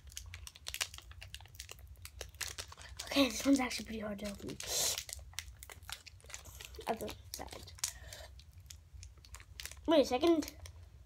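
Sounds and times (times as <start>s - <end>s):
foil wrapper crinkling: 0.0s - 10.8s.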